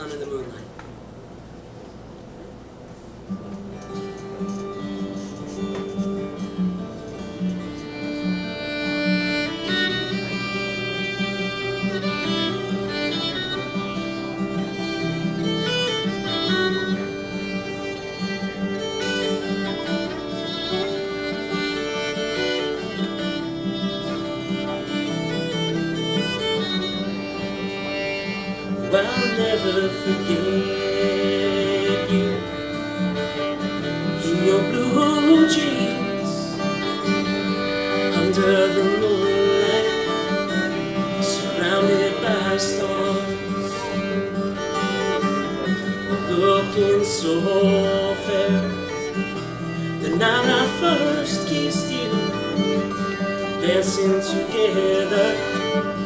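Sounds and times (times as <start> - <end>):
strummed acoustic guitar: 3.1 - 56.0
fiddle melody: 3.7 - 56.0.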